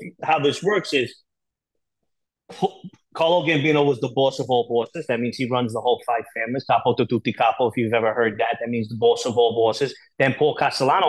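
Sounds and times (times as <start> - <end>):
man's voice: 2.5 - 11.0.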